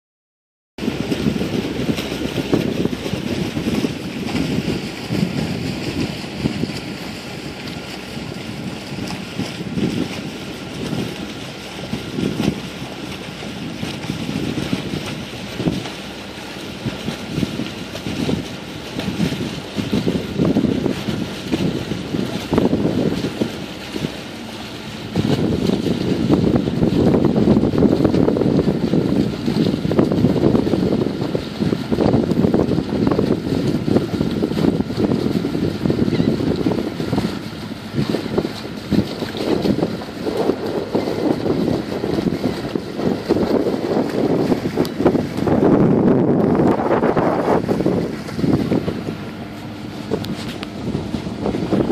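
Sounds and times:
sea wash: 0.8 - 51.9
wind buffeting microphone: 0.8 - 51.9.

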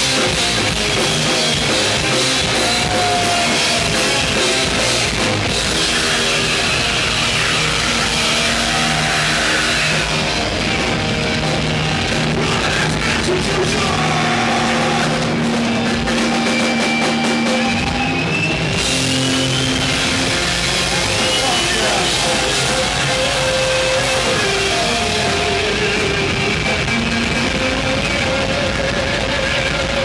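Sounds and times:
heavy metal band playing: 0.0 - 30.0.

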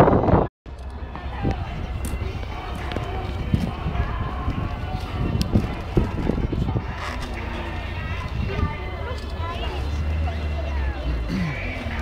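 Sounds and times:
wind on microphone: 0.0 - 9.9
faint voices of people: 0.8 - 12.0.

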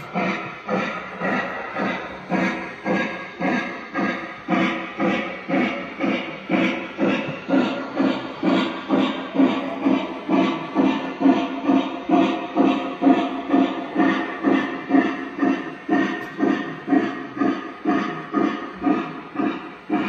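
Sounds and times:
electronic steam locomotive chuffing: 0.0 - 20.0.

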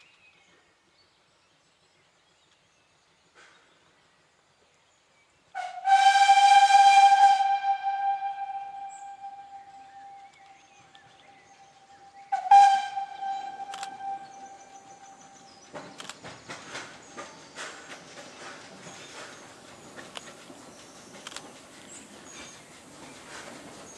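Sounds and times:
steam locomotive whistle: 5.6 - 10.7, 11.3 - 15.7
train clicks and knocks: 5.6 - 23.9.

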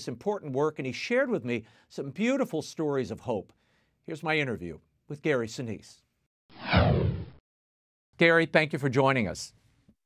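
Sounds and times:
falling whoosh sweep: 6.6 - 7.4.

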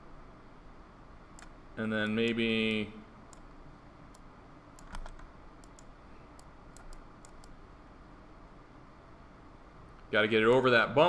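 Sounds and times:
faint room hiss: 0.0 - 11.0
mouse and keyboard clicks: 4.8 - 7.6.

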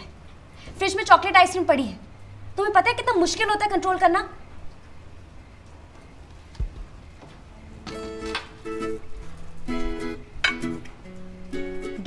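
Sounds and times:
acoustic guitar strumming chords: 7.6 - 12.0.

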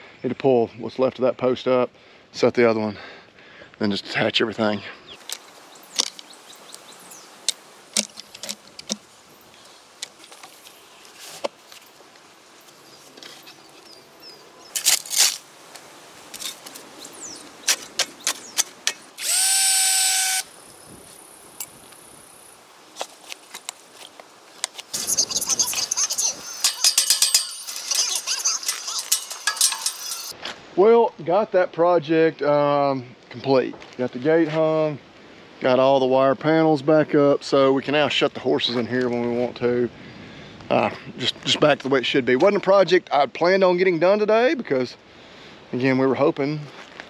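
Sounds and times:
hand tools clicking and knocking: 5.2 - 6.3, 7.4 - 9.1, 17.6 - 19.5, 26.4 - 30.4
power tool running: 19.1 - 20.6.

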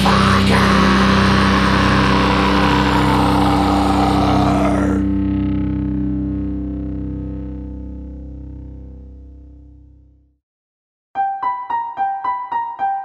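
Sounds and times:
distorted electric guitar chord: 0.0 - 9.9.

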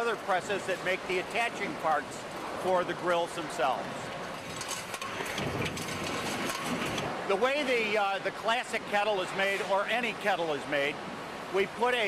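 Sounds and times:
clatter of clicks and clanks: 4.3 - 7.2.

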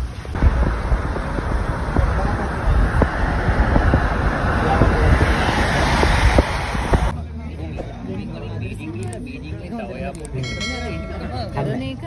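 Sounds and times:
wind buffeting microphone: 0.3 - 7.1
chatter of diners' voices: 7.1 - 12.0.

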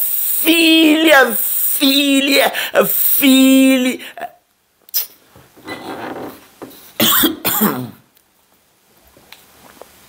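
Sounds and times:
man coughing: 7.0 - 8.0.

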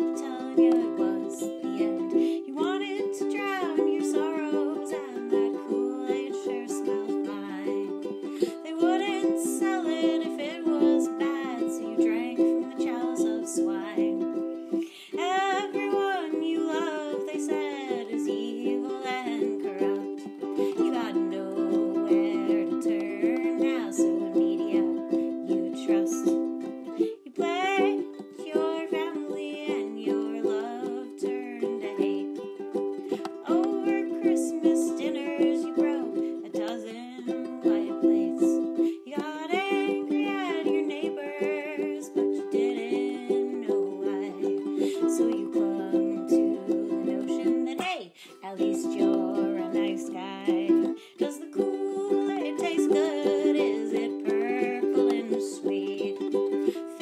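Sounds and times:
ukulele strummed chords: 0.0 - 57.0
woman singing: 0.0 - 57.0.

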